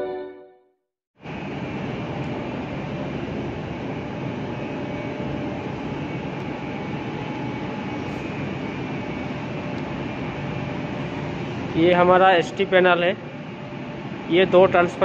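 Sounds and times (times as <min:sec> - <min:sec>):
machinery hum and rush: 0:01.2 - 0:15.0.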